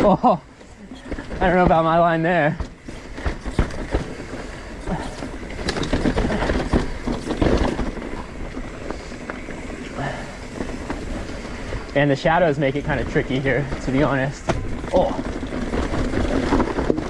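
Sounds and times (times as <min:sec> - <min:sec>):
bike rattling: 0:00.0 - 0:17.0
bike tyres on dirt and roots: 0:00.0 - 0:17.0.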